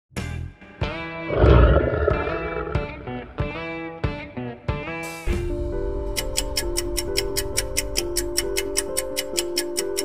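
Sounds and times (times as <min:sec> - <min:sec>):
lion roar sound effect: 0:01.3 - 0:03.5.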